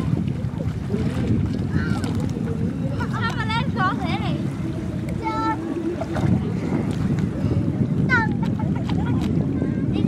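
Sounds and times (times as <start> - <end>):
water lapping: 0.0 - 10.0
wind buffeting microphone: 0.0 - 10.0.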